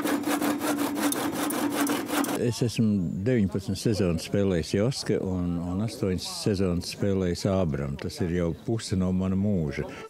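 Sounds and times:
handsaw cutting wood: 0.0 - 2.4.

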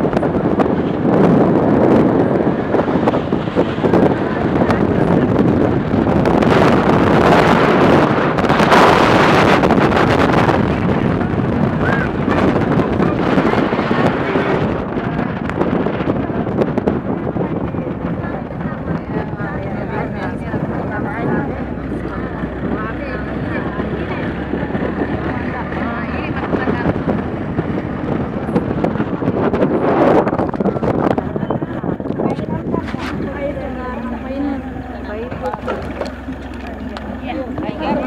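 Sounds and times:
faint indistinct voices: 0.0 - 38.0
vehicle running noise: 0.0 - 38.0
wind on microphone: 0.0 - 38.0.

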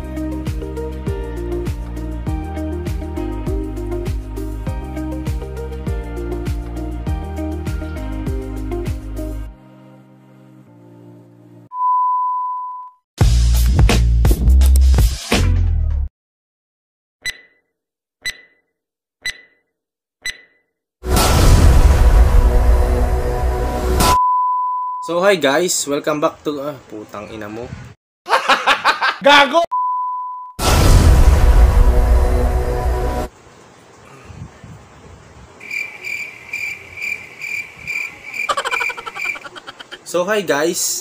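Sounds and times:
timer ticks: 17.2 - 17.6, 18.2 - 18.6, 19.2 - 19.6, 20.2 - 20.6
high-pitched chirping calls: 35.6 - 40.0
rattling croak: 35.6 - 40.0.

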